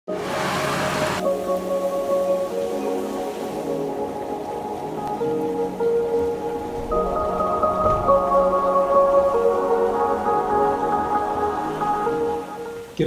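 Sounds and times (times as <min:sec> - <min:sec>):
rain falling: 0:00.1 - 0:13.0
music of held tones: 0:00.8 - 0:13.0.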